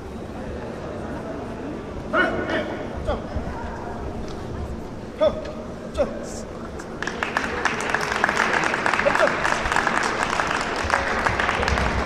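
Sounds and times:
spectators applauding: 7.0s - 12.0s.

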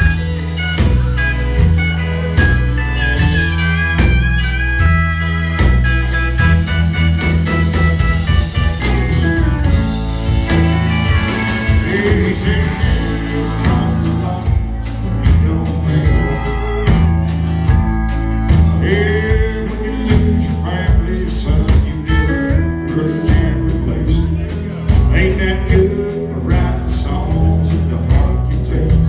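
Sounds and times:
bending guitar notes: 0.0s - 29.0s
country band playing live: 0.0s - 29.0s.

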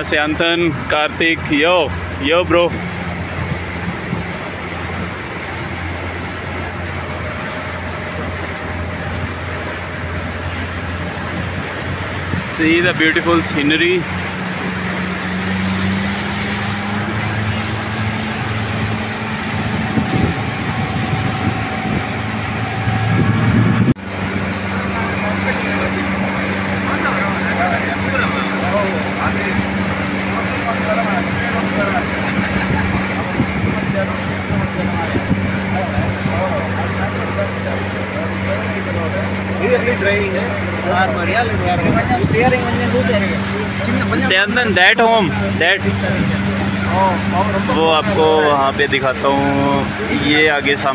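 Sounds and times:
motorboat engine running: 0.0s - 50.9s
rushing water: 0.0s - 50.9s
wind: 0.0s - 50.9s.

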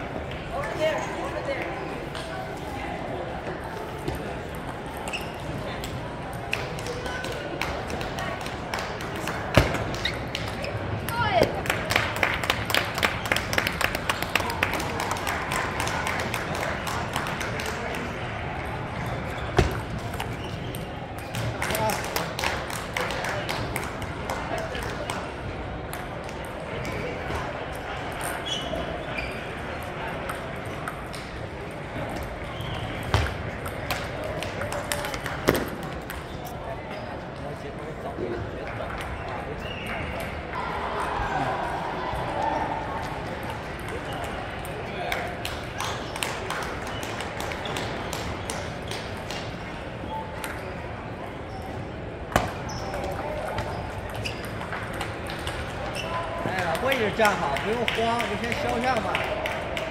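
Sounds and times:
murmur of many voices: 0.0s - 59.9s
table tennis balls clicking: 52.3s - 59.0s.

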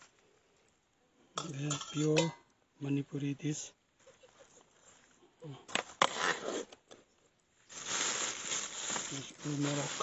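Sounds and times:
rustling: 4.0s - 10.0s.

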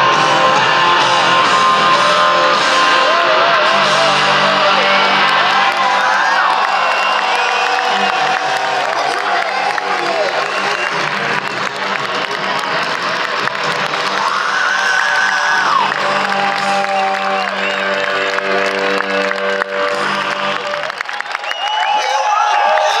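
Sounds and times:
crowd cheering and clapping: 0.0s - 23.0s
live music: 0.0s - 23.0s.

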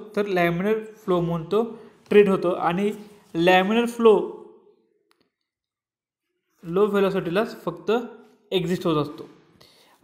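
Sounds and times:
man speaking: 0.0s - 4.7s, 6.6s - 9.5s.

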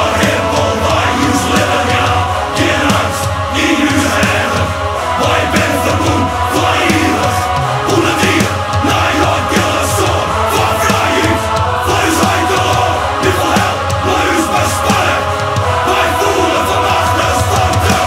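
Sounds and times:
metal guitars and drums: 0.0s - 18.0s
voices chanting: 0.0s - 18.0s.

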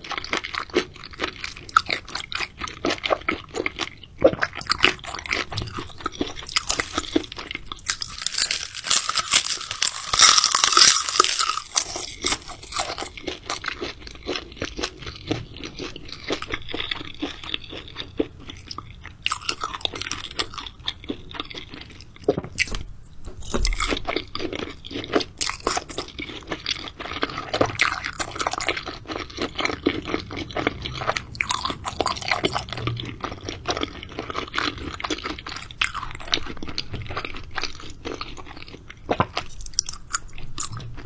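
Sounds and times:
crunchy wet chewing: 0.0s - 41.0s.

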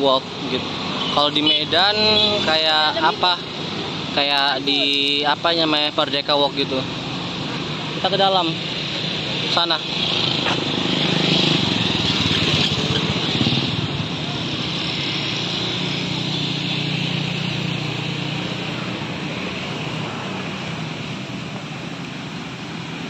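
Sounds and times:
street traffic: 0.0s - 23.0s
motorcycle engine running: 9.9s - 19.2s.

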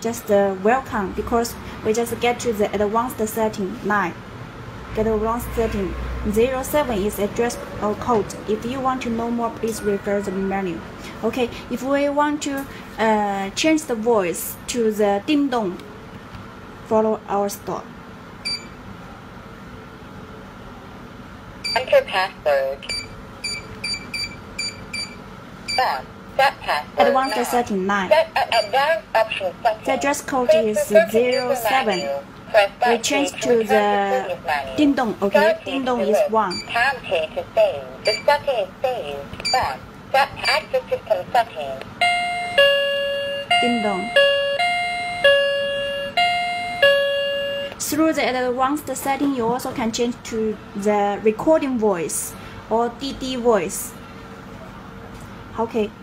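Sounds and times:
low room hum: 0.0s - 56.0s
keypad beep: 18.5s - 18.8s, 22.8s - 25.8s, 27.0s - 27.6s, 28.6s - 28.8s, 31.2s - 32.2s, 36.5s - 36.8s, 38.0s - 38.3s, 39.4s - 39.8s
two-tone doorbell chime: 42.0s - 47.7s.

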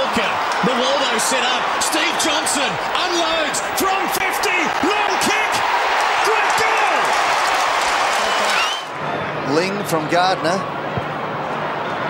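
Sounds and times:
crowd cheering and applauding: 0.0s - 12.0s.

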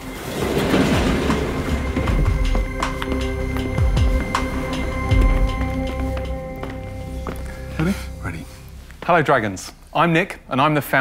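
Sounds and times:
metal goods lift rumbling and clattering: 0.0s - 2.8s.

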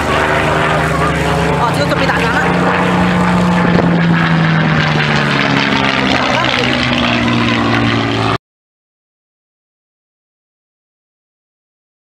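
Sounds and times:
aircraft piston engine and propeller: 0.0s - 8.4s.

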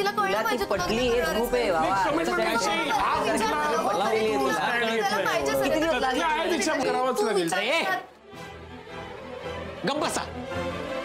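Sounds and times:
people arguing heatedly: 0.0s - 10.8s.

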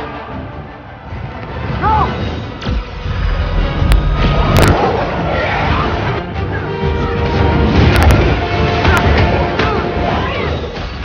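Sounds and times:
dramatic orchestral score: 0.0s - 11.0s.

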